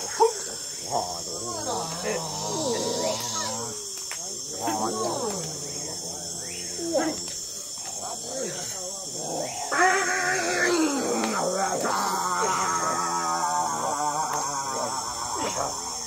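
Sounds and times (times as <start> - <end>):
high insect chorus: 0.0 - 16.0
people making wavering vocal calls: 0.0 - 16.0.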